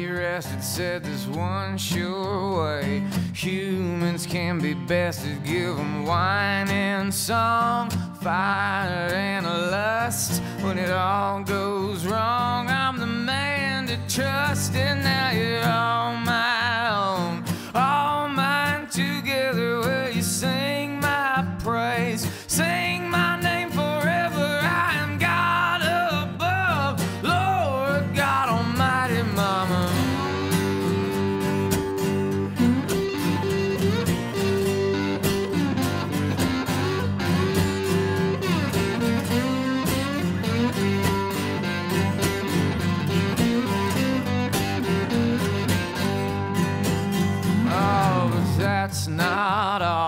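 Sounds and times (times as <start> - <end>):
electric guitar: 0.0 - 50.0
strummed acoustic guitar: 0.0 - 50.0
wavering harmonica melody: 22.3 - 48.8.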